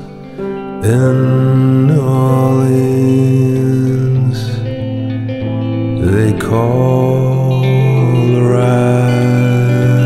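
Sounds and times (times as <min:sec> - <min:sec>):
man singing long note: 0:00.0 - 0:04.8, 0:06.0 - 0:10.0.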